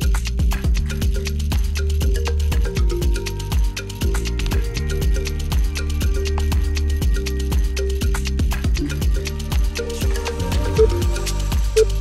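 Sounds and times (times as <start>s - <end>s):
music with heavy bass beat: 0.0s - 12.0s.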